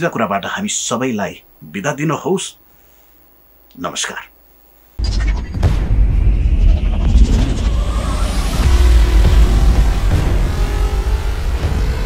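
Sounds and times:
music with heavy bass: 0:05.0 - 0:12.0
rising whoosh: 0:05.0 - 0:12.0.

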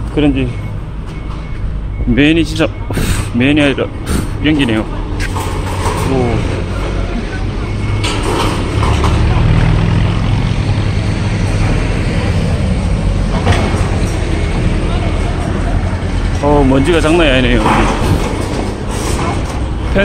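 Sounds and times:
heavy machinery diesel engines rumbling: 0:00.0 - 0:20.0.

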